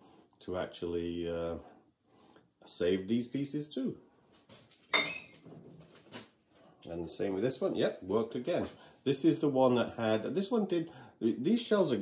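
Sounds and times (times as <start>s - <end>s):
ceramic pot clinking down: 4.9s - 5.4s.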